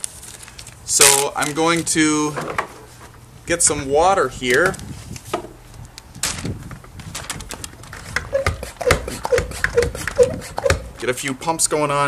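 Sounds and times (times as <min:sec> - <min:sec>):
hand pump squeaking: 0:08.0 - 0:11.0.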